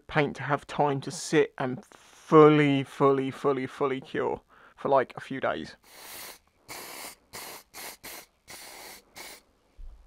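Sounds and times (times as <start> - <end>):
aerosol can spraying: 5.9 - 9.4.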